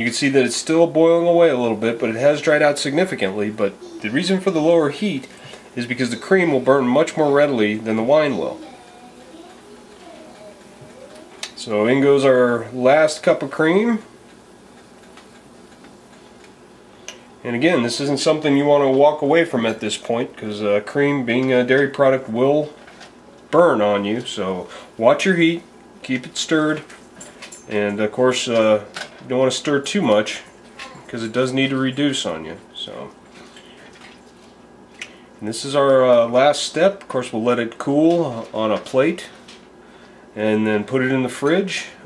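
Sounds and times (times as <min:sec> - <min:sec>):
food sizzling in a pan: 0:00.7 - 0:20.0.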